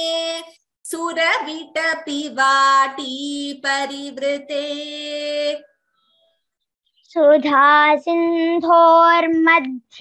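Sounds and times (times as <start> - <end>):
woman chanting: 0.0 - 5.8.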